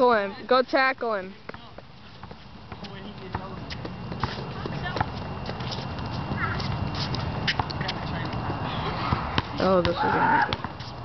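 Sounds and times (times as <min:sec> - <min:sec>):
footsteps on hard court: 0:01.4 - 0:11.0.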